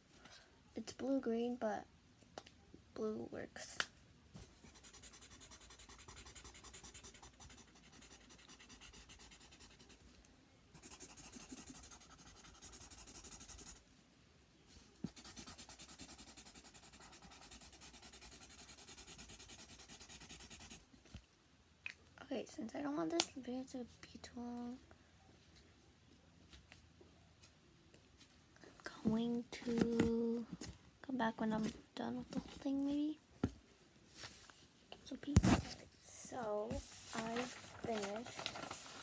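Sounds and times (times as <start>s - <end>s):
marker scribbling on paper: 4.7s - 10.0s, 10.8s - 13.8s, 15.0s - 20.8s.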